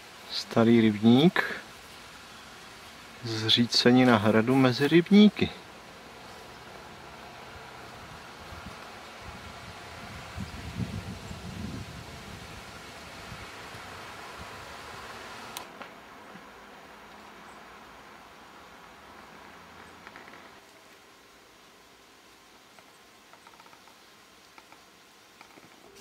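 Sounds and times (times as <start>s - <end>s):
steady hiss: 0.0s - 26.0s
low rumbling microphone noise: 5.4s - 15.6s.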